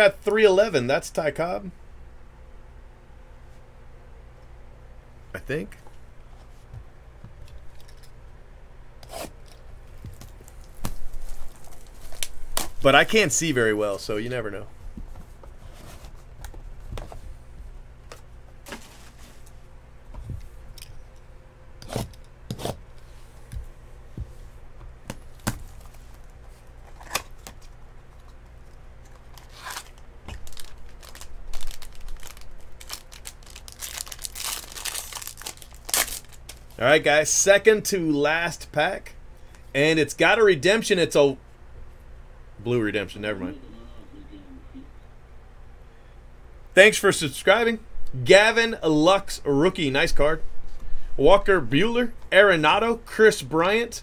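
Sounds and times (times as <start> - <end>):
plastic wrapper tearing and crinkling: 29.2 - 36.8.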